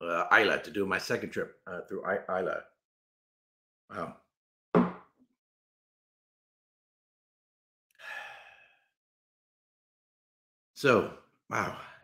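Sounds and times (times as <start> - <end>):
man's breathy exhale: 8.0 - 8.9.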